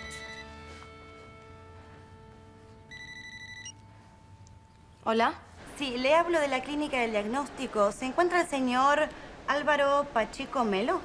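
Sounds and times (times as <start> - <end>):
electronic telephone ring: 0.0 - 0.8, 2.9 - 3.8
soft background music: 0.0 - 8.9.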